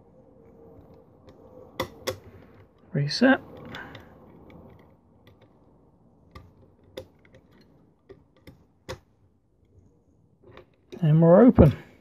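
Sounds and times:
lock picking metallic clicks: 0.4s - 9.8s.

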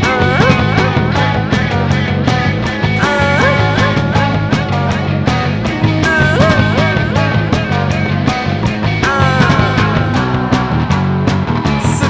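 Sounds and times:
garage rock band playing: 0.0s - 12.0s
lead guitar bending pitch: 0.0s - 12.0s.

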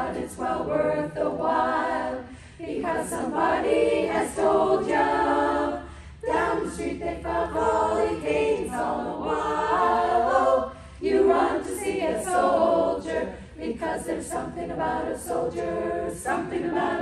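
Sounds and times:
women's choir singing a cappella: 0.0s - 17.0s
singers breathing: 2.2s - 2.6s, 5.8s - 6.2s, 10.7s - 11.0s, 13.3s - 13.6s.

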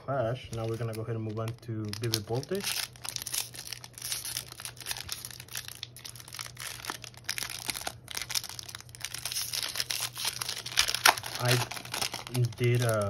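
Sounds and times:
foil wrapper crinkling: 0.4s - 13.0s.

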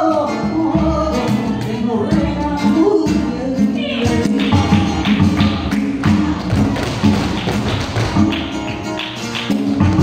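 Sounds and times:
flamenco music: 0.0s - 10.0s
dance shoes tapping on floor: 4.1s - 10.0s.

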